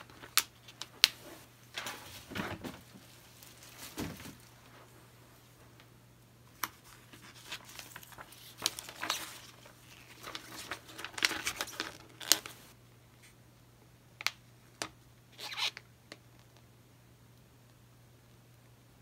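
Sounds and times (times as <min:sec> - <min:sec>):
plastic sheet crinkling: 0:00.0 - 0:04.7, 0:06.6 - 0:12.7.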